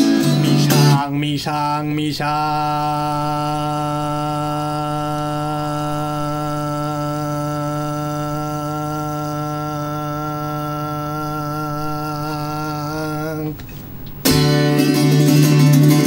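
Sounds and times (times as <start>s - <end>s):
man singing a long held note: 0.0s - 13.6s.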